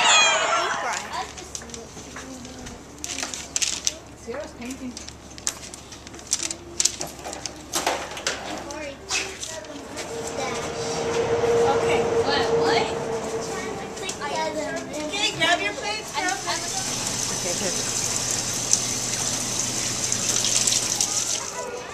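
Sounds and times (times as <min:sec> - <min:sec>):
children chattering: 0:00.0 - 0:21.9
steady held tone: 0:09.6 - 0:20.2.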